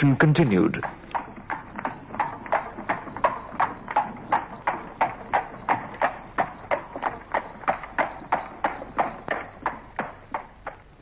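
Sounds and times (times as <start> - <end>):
ringing clip-clop knocks: 0.0 - 11.0.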